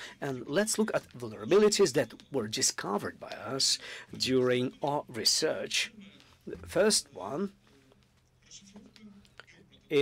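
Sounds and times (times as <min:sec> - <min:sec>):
man talking into a microphone: 0:00.0 - 0:07.6.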